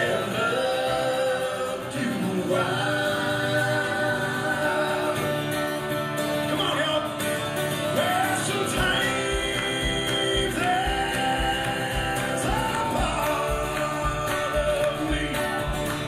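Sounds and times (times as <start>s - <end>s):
person singing: 0.0s - 5.9s, 7.8s - 16.0s
acoustic and slide guitar: 0.0s - 16.0s.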